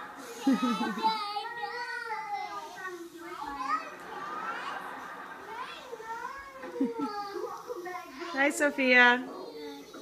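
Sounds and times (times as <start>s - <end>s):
young children babbling: 0.3s - 4.0s, 5.5s - 8.3s.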